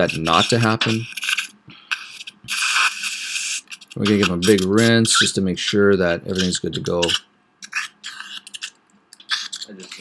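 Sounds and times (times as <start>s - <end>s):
dental equipment hissing: 0.0s - 10.0s.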